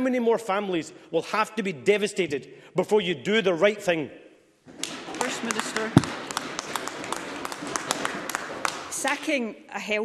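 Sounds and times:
scattered applause: 4.8s - 9.3s.

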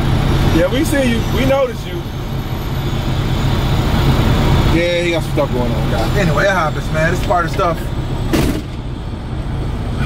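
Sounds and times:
truck diesel engine idling: 0.0s - 10.0s.

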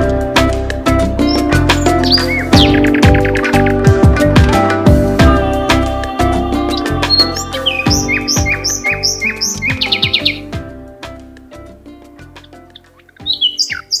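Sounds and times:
background music: 0.0s - 14.0s
small bird chirping: 1.2s - 4.0s, 6.7s - 10.5s, 12.4s - 14.0s.

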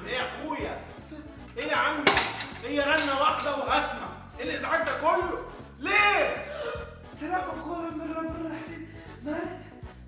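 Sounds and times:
man's voice: 0.0s - 9.7s
backing music with low beat: 0.0s - 10.0s.

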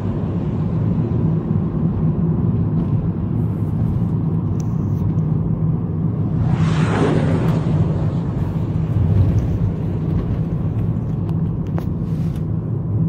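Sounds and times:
car engine and tyres rumbling: 0.0s - 13.0s.

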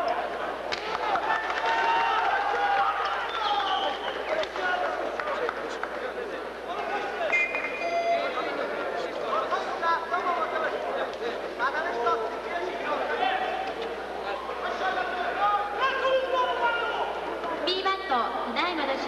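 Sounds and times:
crowd shouting and calling: 0.0s - 5.8s, 6.4s - 18.5s.

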